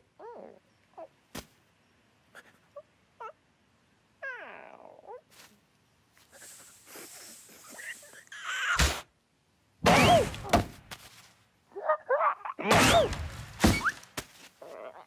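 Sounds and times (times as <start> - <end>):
cartoon bird squeaks and grunts: 7.7 - 9.0.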